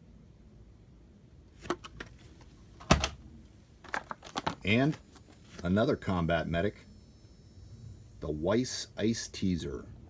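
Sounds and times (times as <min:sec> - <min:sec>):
plastic clicks of toy packaging: 0:03.8 - 0:05.0.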